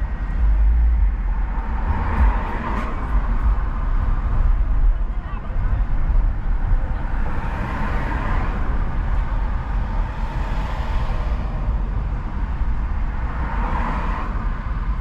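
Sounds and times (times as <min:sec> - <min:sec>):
car road and engine rumble: 0:00.0 - 0:15.0.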